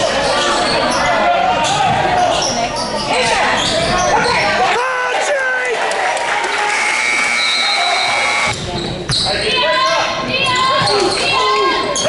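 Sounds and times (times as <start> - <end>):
sneakers squeaking: 0.2 - 4.6, 6.7 - 12.0
spectators calling out: 0.2 - 8.8.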